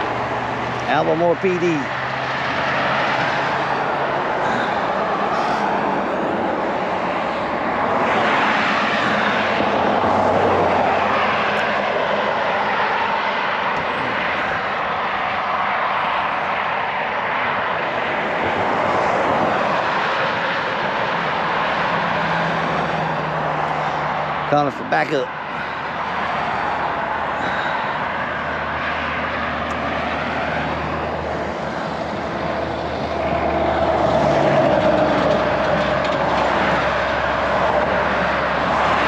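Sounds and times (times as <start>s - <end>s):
road traffic passing: 0.0s - 39.0s.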